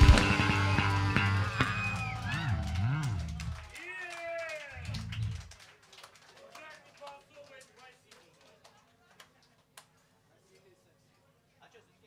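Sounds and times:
band bass notes: 0.0 - 3.7, 4.8 - 5.5.

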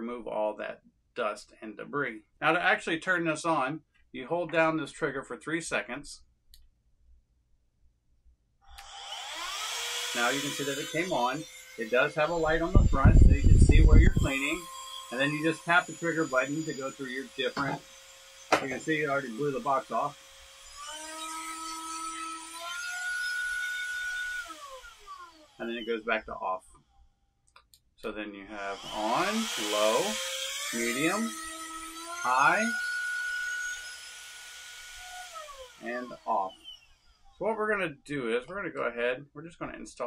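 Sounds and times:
air duster motor whining: 8.8 - 26.2, 28.5 - 37.4.

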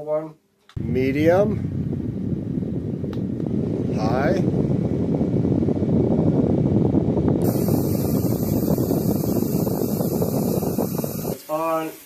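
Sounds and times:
handheld fan airflow rushing: 0.8 - 11.5.

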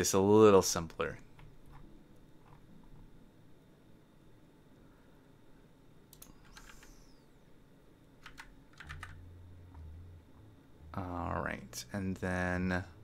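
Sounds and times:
low hum: 0.0 - 13.0
computer keyboard typing: 6.1 - 7.0, 8.2 - 9.2.

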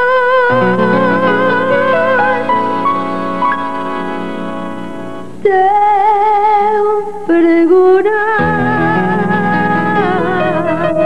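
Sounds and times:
sustained keyboard chords: 0.0 - 5.5, 8.3 - 11.0.

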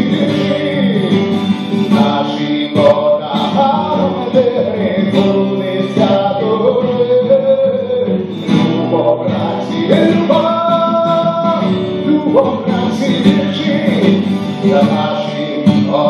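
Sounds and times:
acoustic guitar: 0.0 - 16.0
man singing: 0.0 - 16.0.

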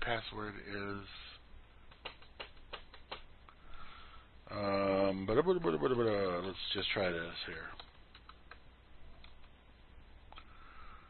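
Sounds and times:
keyboard keys tapping: 1.9 - 3.2, 7.7 - 8.6.

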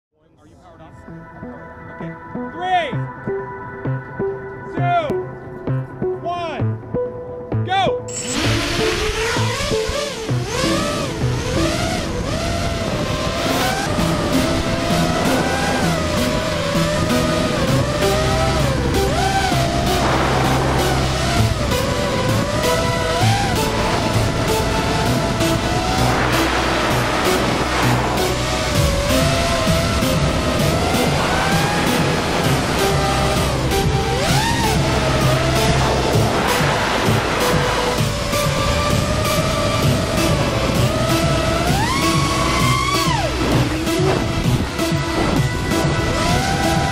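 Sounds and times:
background music: 0.2 - 46.9
quadcopter motors whining: 8.1 - 46.9.

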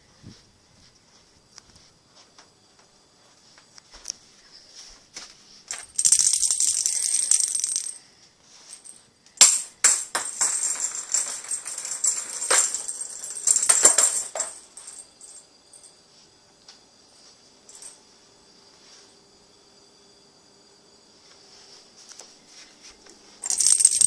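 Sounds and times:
rattling and rustling toy: 5.7 - 15.8, 23.4 - 24.0.

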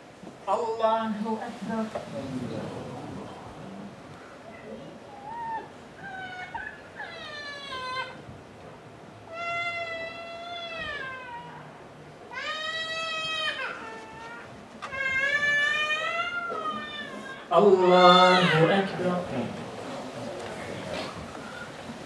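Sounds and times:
young child crying: 4.4 - 8.2, 9.3 - 11.7, 12.3 - 18.7.

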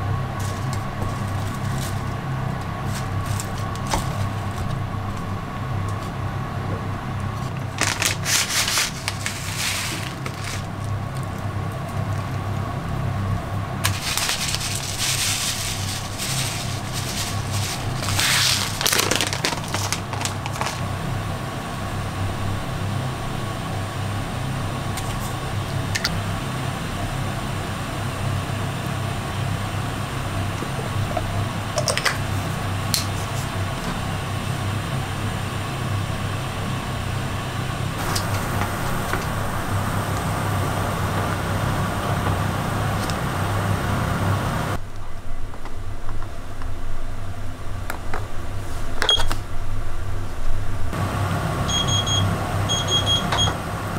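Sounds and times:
low room hum: 0.0 - 53.9
seeds rattling into wooden bowl: 7.8 - 11.2, 13.8 - 20.9.

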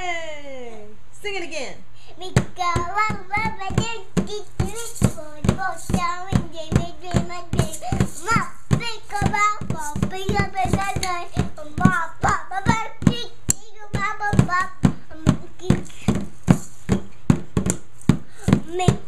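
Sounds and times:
child singing: 2.2 - 16.3, 18.4 - 19.0
toy drum beat: 2.3 - 19.0.

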